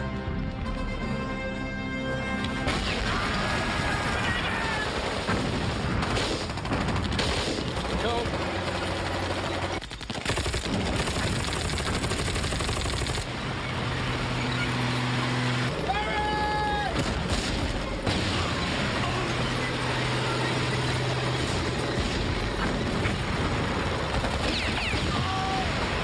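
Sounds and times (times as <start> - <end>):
film music: 0.0 - 3.8
machine-gun and rifle fire: 2.7 - 15.5, 16.9 - 26.0
men shouting: 3.4 - 5.1, 15.8 - 17.0.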